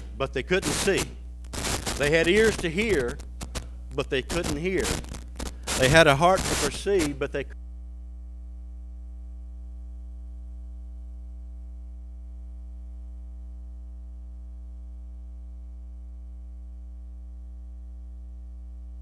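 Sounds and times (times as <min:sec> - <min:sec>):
buzzy electrical mains hum: 0:00.0 - 0:19.0.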